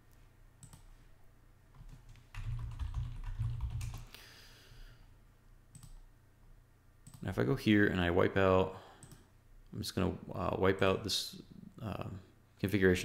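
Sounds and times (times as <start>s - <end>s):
typing on computer keyboard: 1.8s - 4.1s.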